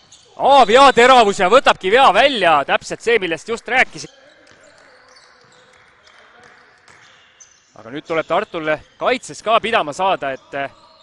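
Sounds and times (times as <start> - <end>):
faint hall noise: 0.0 - 11.0.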